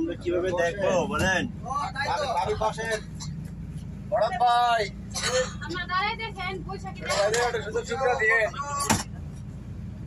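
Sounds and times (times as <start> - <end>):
voices: 0.0 - 9.6
road rumble inside moving bus: 0.0 - 10.0.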